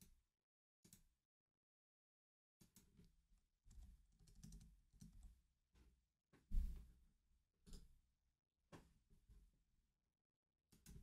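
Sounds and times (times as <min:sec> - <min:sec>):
computer keyboard typing: 0:03.7 - 0:05.1.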